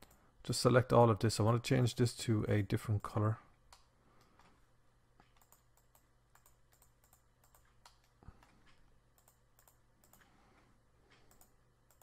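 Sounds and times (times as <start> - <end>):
keyboard and mouse clicks: 5.2 - 10.3, 11.1 - 12.0.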